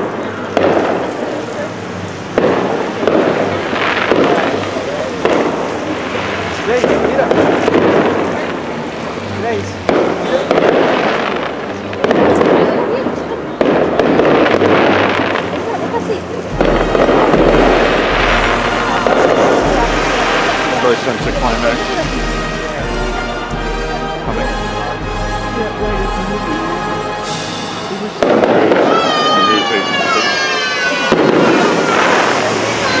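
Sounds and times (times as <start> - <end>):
fireworks bursting with crackle: 0.0 - 23.9, 27.2 - 33.0.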